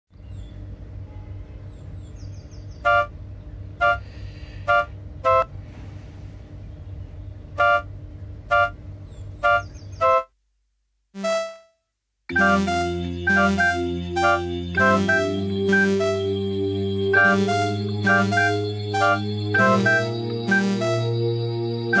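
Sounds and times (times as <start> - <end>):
low rumble of street noise: 0.1 - 10.8, 12.3 - 22.0
two-tone vehicle horn toots: 2.9 - 3.2, 3.8 - 5.6, 7.6 - 7.9, 8.5 - 8.8, 9.4 - 10.3, 11.2 - 16.5, 17.2 - 21.2.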